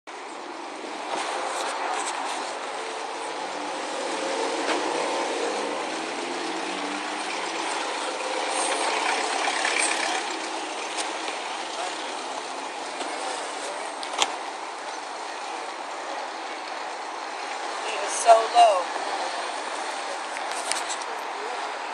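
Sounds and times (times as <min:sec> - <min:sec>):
outdoor traffic noise: 0:00.1 - 0:21.9
vehicle engine passing: 0:00.8 - 0:14.4.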